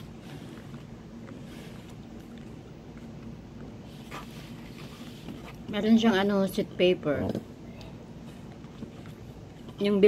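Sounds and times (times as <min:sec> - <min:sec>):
low background hum: 0:00.0 - 0:10.0
soft chewing: 0:00.0 - 0:10.0.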